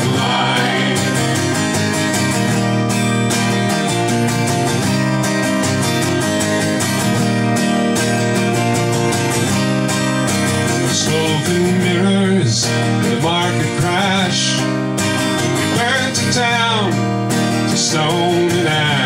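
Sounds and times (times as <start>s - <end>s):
man singing: 0.0s - 1.8s, 10.9s - 14.7s, 15.6s - 17.0s, 17.7s - 19.0s
acoustic guitar strumming: 0.0s - 19.0s.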